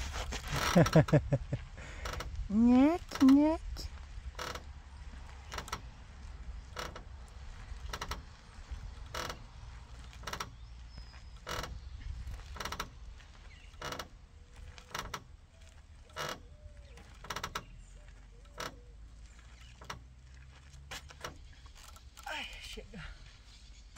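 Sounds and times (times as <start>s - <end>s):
wooden swing creaking: 0.0s - 23.9s.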